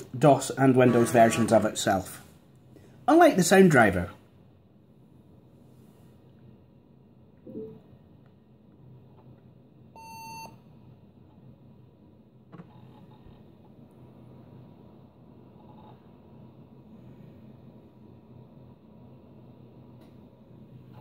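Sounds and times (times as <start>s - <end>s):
laptop speaker beep: 10.0s - 10.6s.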